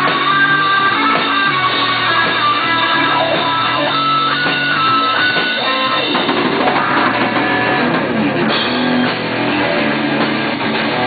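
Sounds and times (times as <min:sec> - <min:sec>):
electric guitar melody: 0:00.0 - 0:11.0.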